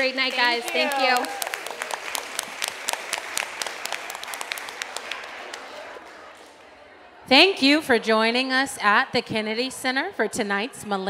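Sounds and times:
people applauding: 0.0 - 6.8.

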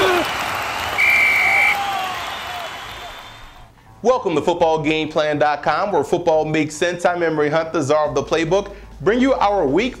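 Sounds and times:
people shouting: 0.0 - 0.4
high whistle tone: 0.9 - 3.6.

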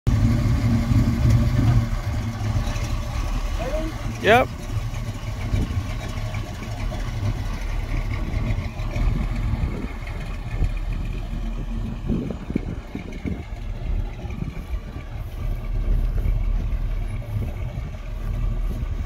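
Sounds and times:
truck engine running at low revs: 0.1 - 19.0.

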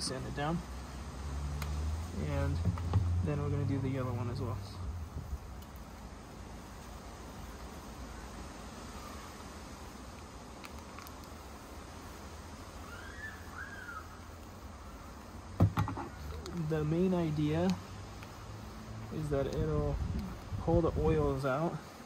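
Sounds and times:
low hum and hiss: 0.0 - 22.0
faint rising and falling call: 12.7 - 15.4.

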